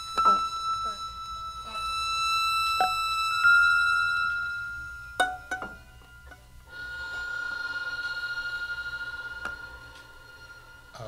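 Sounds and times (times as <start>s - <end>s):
high sustained musical tone: 0.0s - 11.0s.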